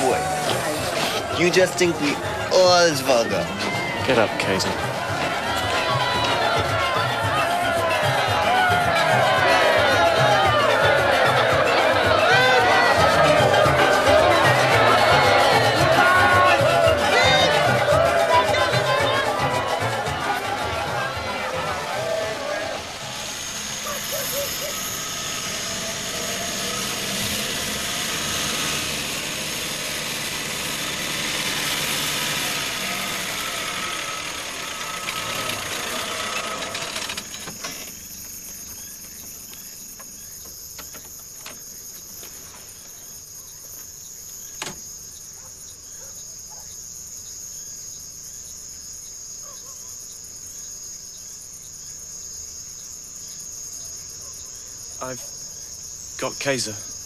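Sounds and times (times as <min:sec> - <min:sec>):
loud dense noise: 0:00.0 - 0:38.6
crickets chirping: 0:00.0 - 0:57.0.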